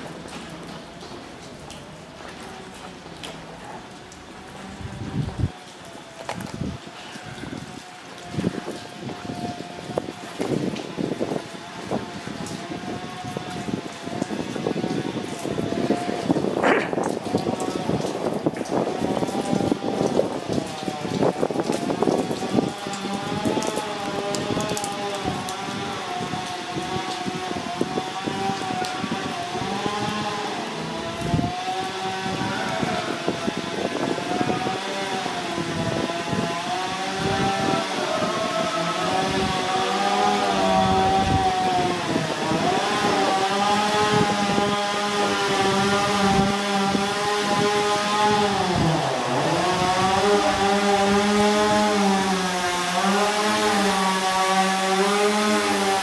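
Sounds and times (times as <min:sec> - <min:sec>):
petrol power saw running: 0:33.1 - 0:56.0.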